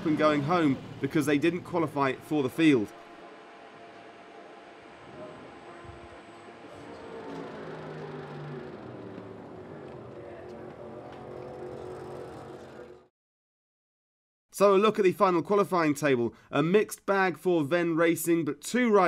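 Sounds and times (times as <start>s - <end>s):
motorcycle and vehicle engines running: 0.0s - 1.8s, 5.9s - 13.1s.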